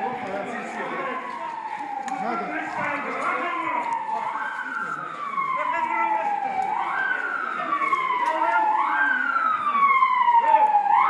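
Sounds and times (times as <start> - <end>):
vehicle siren wailing: 0.0 - 11.0.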